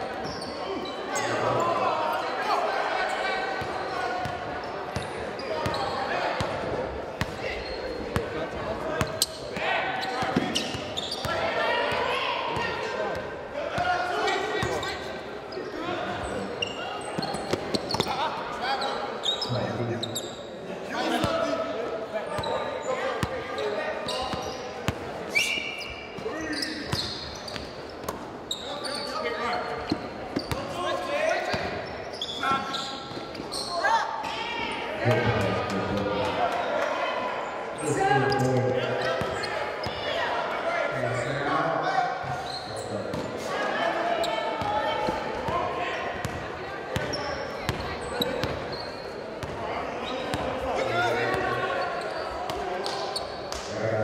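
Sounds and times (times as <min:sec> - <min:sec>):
echoing shouts and chatter: 0:00.0 - 0:54.0.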